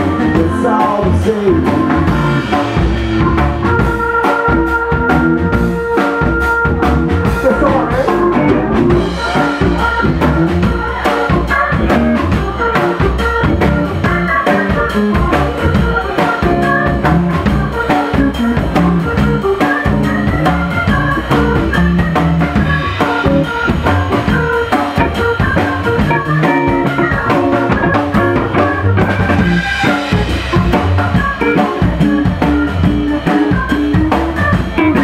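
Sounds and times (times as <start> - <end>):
drum kit steady beat: 0.0 - 35.0
electric guitar: 0.0 - 35.0
keyboards: 0.0 - 35.0
sousaphone: 3.2 - 10.0.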